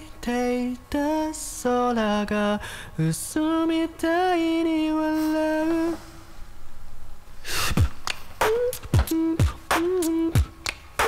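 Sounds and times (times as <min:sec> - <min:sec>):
man singing slow melody: 0:00.0 - 0:06.2, 0:08.4 - 0:10.6
hiss-like breaths: 0:07.4 - 0:08.0.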